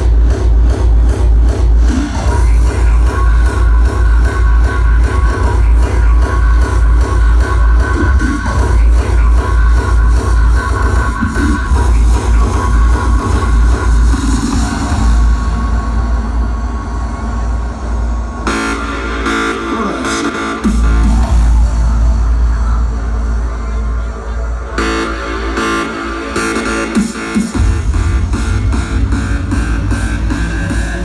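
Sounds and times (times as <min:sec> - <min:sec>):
hardstyle dance music: 0:00.0 - 0:31.0
heavy bass: 0:00.0 - 0:31.0.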